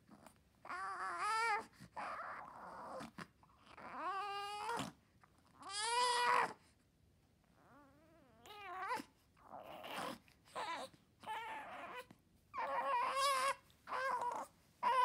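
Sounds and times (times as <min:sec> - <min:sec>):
newborn baby crying: 0:09.8 - 0:15.0.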